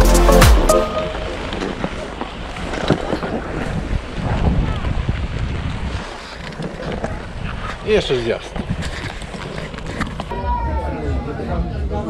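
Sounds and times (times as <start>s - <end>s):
crowd chatter: 6.6s - 12.0s.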